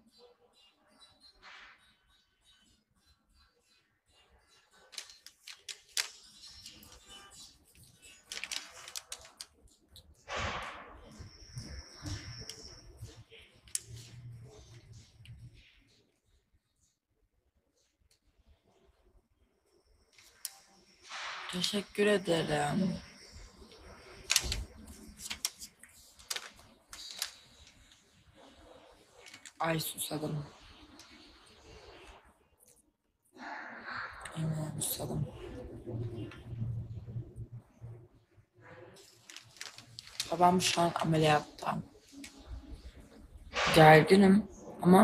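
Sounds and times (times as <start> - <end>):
paper bag rustling: 4.8 - 15.4, 21.1 - 32.2, 39.0 - 43.8.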